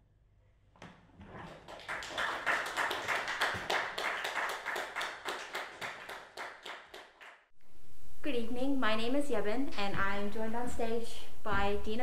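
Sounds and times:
small group applauding: 0:01.4 - 0:07.5.

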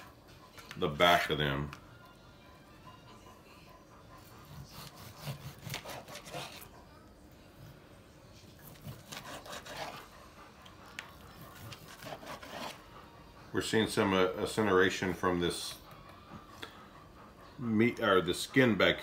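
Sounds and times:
knife sawing through ribs: 0:04.2 - 0:06.7, 0:08.6 - 0:10.5, 0:11.2 - 0:13.0.

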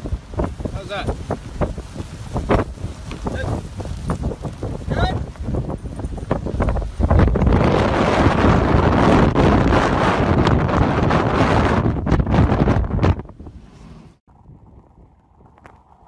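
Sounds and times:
blizzard wind buffeting microphone: 0:00.0 - 0:16.0.

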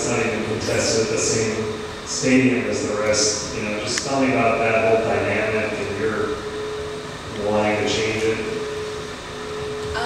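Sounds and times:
constant held tone: 0:00.0 - 0:10.0
ventilation hum: 0:00.0 - 0:10.0.

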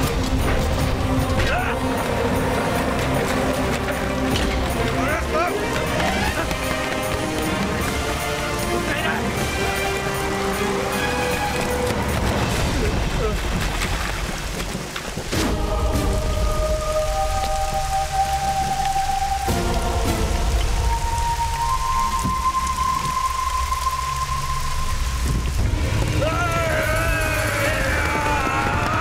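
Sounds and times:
dramatic film score: 0:00.0 - 0:29.0
heavy rain: 0:00.0 - 0:29.0.

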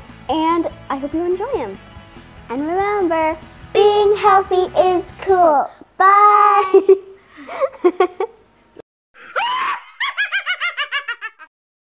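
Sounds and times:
girl laughing: 0:06.5 - 0:08.4, 0:09.2 - 0:11.5
high rapid cackling laugh: 0:09.2 - 0:11.5.

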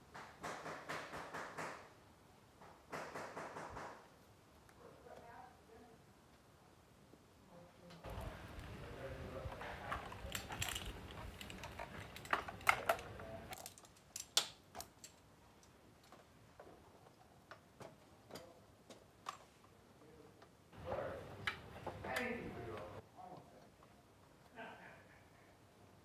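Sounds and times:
clicks and knocks of handling gear: 0:09.4 - 0:19.8.

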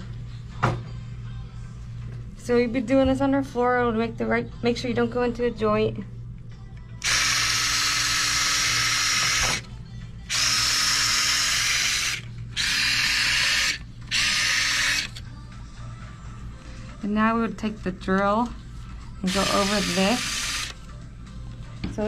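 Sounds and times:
surgical power driver running: 0:07.0 - 0:15.4, 0:19.2 - 0:21.0.

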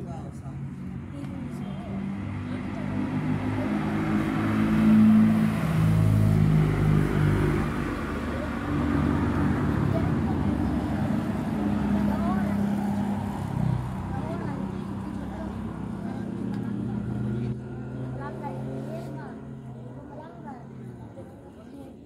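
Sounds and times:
people talking: 0:00.0 - 0:06.3, 0:07.0 - 0:22.0
vehicle engines passing: 0:00.0 - 0:22.0.

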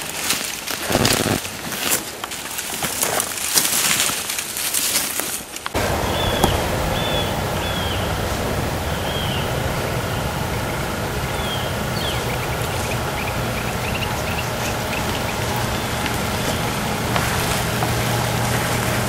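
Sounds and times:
rushing outdoor noise: 0:00.0 - 0:19.0
small birds chirping: 0:05.7 - 0:18.9.

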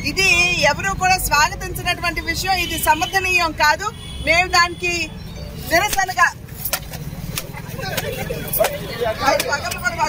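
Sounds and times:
crowd voices: 0:05.7 - 0:10.0.

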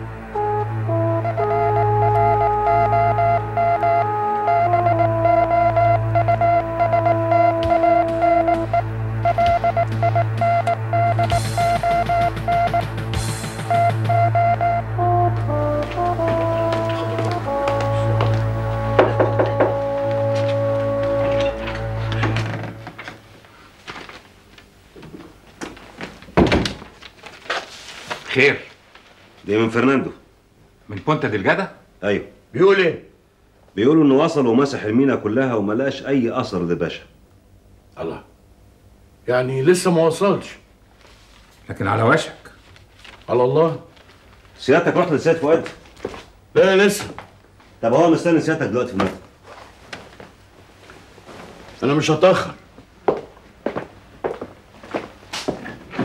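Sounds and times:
synthesizer drone and chords: 0:00.0 - 0:23.3
high synth note beeping: 0:00.4 - 0:13.0, 0:13.6 - 0:15.5
wooden door shutting: 0:21.2 - 0:23.2.

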